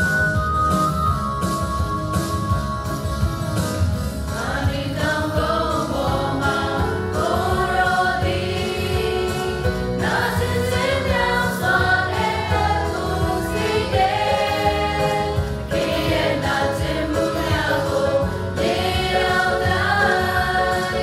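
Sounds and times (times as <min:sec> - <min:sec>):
instrumental backing: 0:00.0 - 0:21.0
choir singing: 0:04.3 - 0:21.0.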